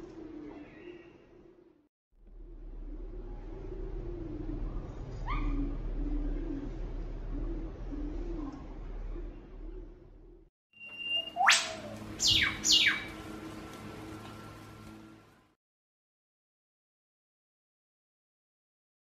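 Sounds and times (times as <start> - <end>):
whipbird whip-crack call: 11.0 - 13.0.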